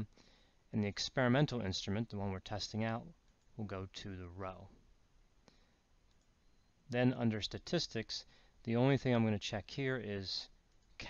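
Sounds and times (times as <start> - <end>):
computer mouse click: 6.1 - 6.4.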